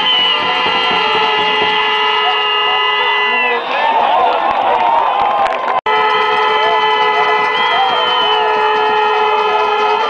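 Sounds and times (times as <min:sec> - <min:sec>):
wavering voices or whistles: 0:00.0 - 0:00.6, 0:07.4 - 0:08.6
horns sounding long notes: 0:00.0 - 0:04.3, 0:05.9 - 0:10.0.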